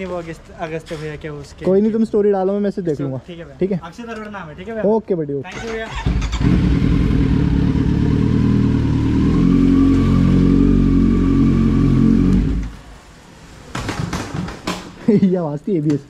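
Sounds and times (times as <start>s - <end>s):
motorcycle engine running slowly: 6.4s - 12.8s.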